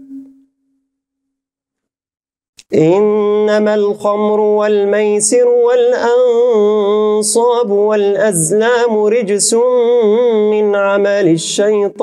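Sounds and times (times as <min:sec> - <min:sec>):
man chanting recitation: 0:02.6 - 0:12.0.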